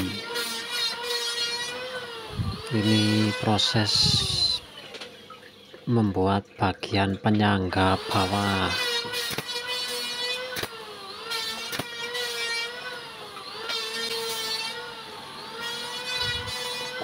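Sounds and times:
droning machine hum: 0.0 - 13.7
pneumatic nailer firing: 8.1 - 12.9, 13.5 - 14.8, 15.6 - 17.0.

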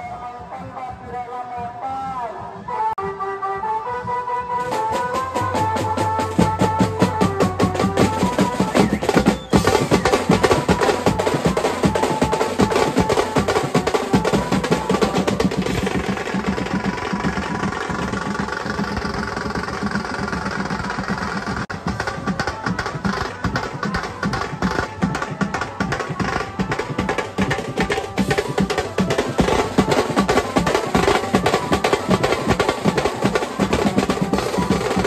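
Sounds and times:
melody line over drums: 2.6 - 35.0
cymbals: 3.9 - 35.0
bass drum: 4.6 - 35.0
fast drumming on snare drums: 4.6 - 35.0.

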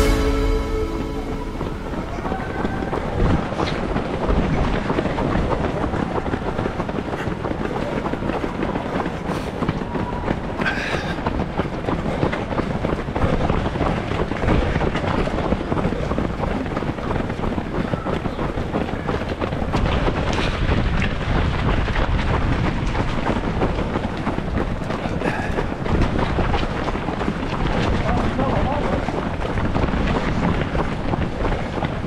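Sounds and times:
running footfalls on asphalt: 2.2 - 32.0
wind rushing over camera: 2.2 - 32.0.

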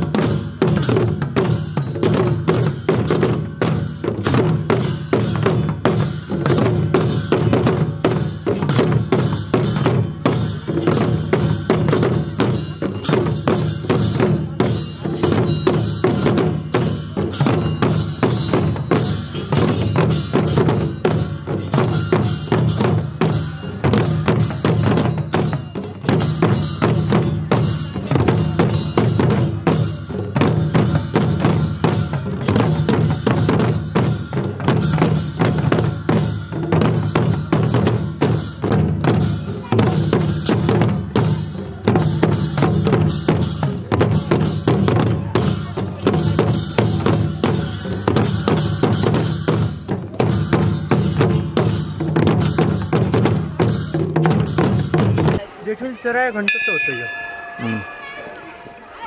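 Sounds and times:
drums beaten with sticks: 0.0 - 59.0.

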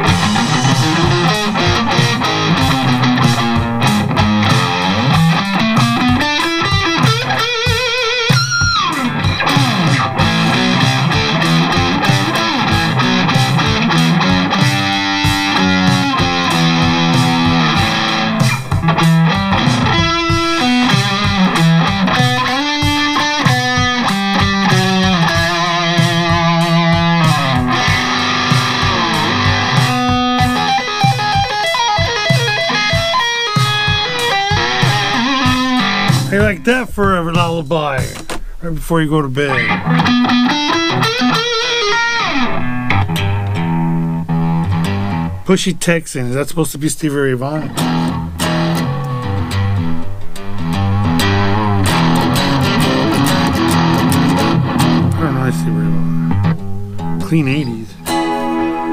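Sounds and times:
electric guitar lead lines: 0.0 - 58.9
programmed drum backing track: 0.0 - 58.9.

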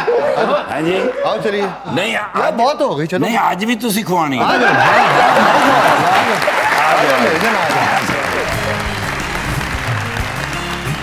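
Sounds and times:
studio audience applauding: 4.6 - 11.0
man talking: 6.8 - 8.9.

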